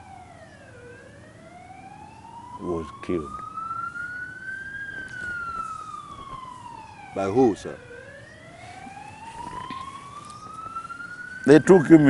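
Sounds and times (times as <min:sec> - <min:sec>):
emergency siren wailing: 0:00.0 - 0:12.0.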